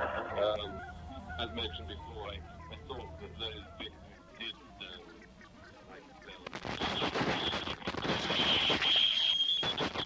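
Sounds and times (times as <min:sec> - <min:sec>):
steady high whine: 0:00.0 - 0:04.0
crackling rustling noise: 0:06.4 - 0:10.0.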